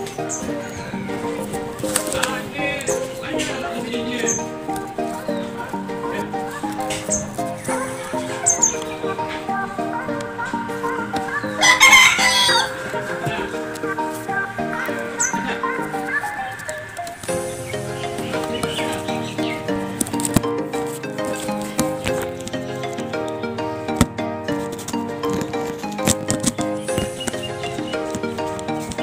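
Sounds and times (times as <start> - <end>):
background music: 0.0 - 29.0
rooster crowing: 11.4 - 13.0.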